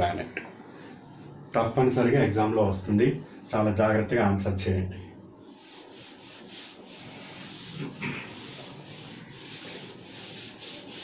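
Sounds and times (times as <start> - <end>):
eraser rubbing on whiteboard: 5.4 - 11.0.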